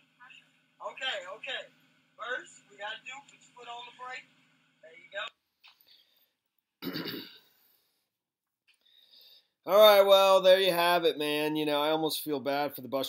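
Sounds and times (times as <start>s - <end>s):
voices on phone recording: 0.0s - 7.5s, 9.6s - 13.0s
man clearing throat: 6.8s - 7.5s.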